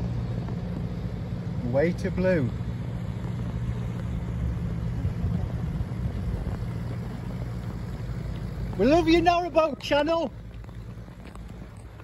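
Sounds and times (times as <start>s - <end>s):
diesel engine humming: 0.0s - 12.0s.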